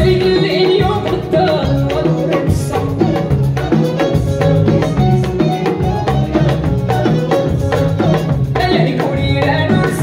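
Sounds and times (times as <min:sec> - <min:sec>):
drum kit: 0:00.0 - 0:10.0
electric bass and guitar: 0:00.0 - 0:10.0
hand-beaten frame drums: 0:00.0 - 0:10.0.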